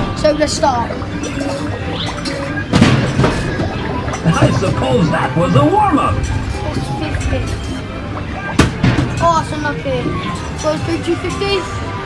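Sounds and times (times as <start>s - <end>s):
chatter: 0.0s - 12.0s
arcade game music: 0.6s - 10.1s.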